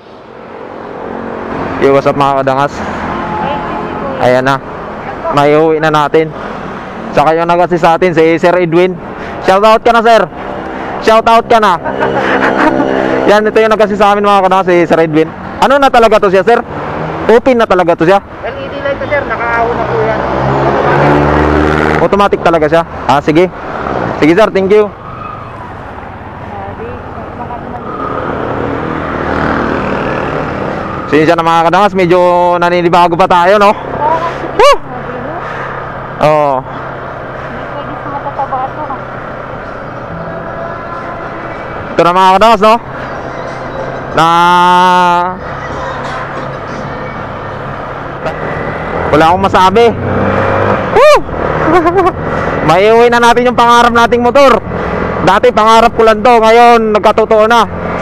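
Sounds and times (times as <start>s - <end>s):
engine droning: 8.1s - 17.4s.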